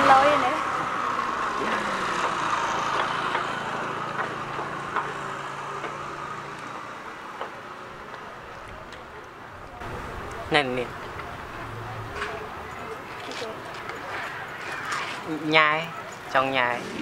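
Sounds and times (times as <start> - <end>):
vehicle engine and road noise: 0.0 - 17.0.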